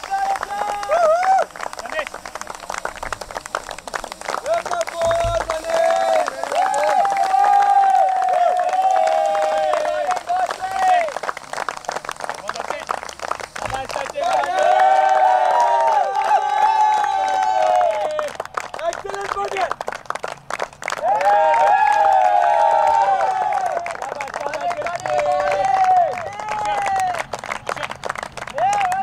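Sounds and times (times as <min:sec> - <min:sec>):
overlapping voices talking: 0:00.0 - 0:29.0
people clapping: 0:00.0 - 0:29.0.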